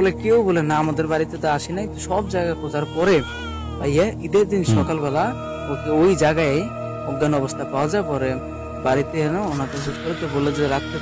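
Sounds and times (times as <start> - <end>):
background music: 0.0 - 11.0
man talking: 3.9 - 5.3
long falling wailing cry: 4.7 - 11.0.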